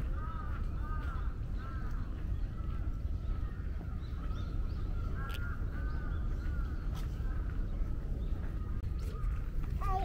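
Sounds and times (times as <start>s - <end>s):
crows cawing: 0.0s - 7.6s
steady low rumble: 0.0s - 10.0s.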